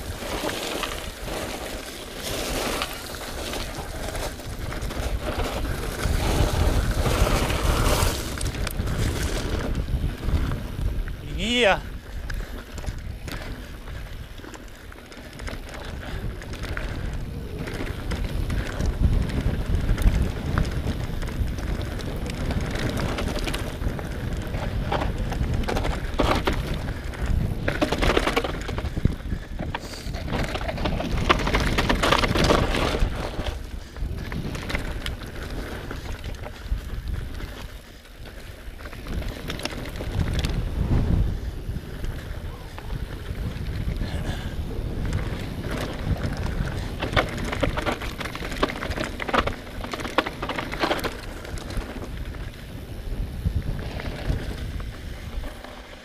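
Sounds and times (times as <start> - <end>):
bike rattling over bumps: 0.0 - 56.0
bike tyres rolling over stones: 0.0 - 56.0
wind noise on microphone: 0.0 - 56.0.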